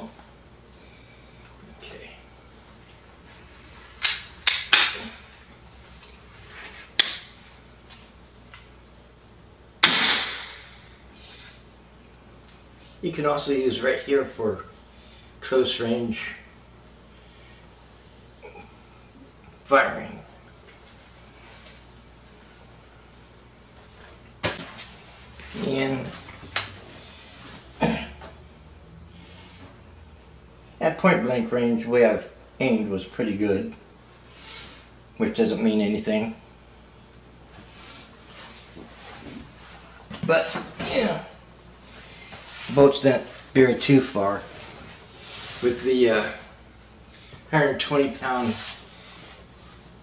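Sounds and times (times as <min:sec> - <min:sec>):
crossbow shot snap: 0:04.0 - 0:05.2, 0:07.0 - 0:07.4, 0:09.8 - 0:10.9.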